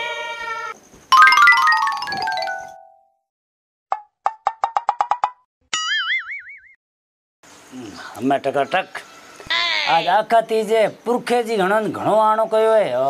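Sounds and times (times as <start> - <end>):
falling run of bell-like notes: 1.2 - 3.0.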